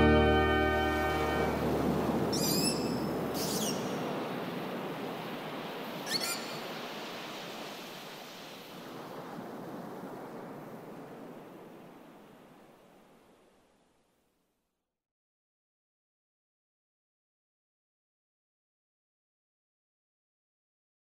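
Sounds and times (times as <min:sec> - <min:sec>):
surf washing: 0:00.0 - 0:14.0
high rippling chirp calls: 0:02.2 - 0:04.1, 0:06.0 - 0:06.7.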